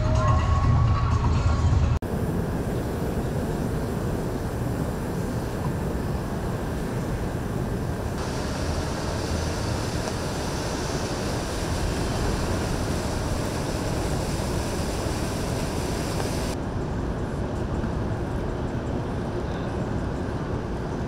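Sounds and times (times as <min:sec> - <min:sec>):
outdoor rumble and hiss: 0:00.0 - 0:21.0.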